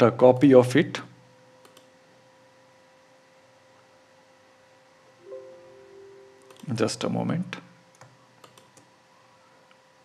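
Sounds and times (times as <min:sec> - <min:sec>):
faint steady hum: 0:00.0 - 0:10.0
computer mouse clicks: 0:01.6 - 0:01.9, 0:06.5 - 0:06.7, 0:07.9 - 0:08.9.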